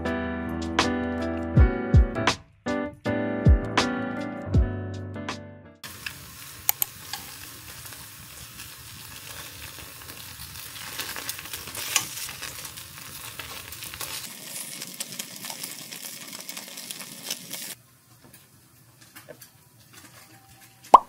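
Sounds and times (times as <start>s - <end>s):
food sizzling in oil: 5.8s - 17.8s
chopsticks clicking on pan: 6.0s - 7.4s.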